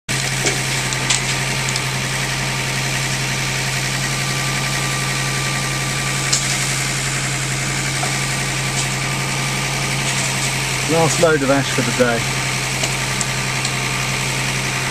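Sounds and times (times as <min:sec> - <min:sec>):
hydraulic crane whine: 0:00.1 - 0:14.9
tractor diesel engine running: 0:00.1 - 0:14.9.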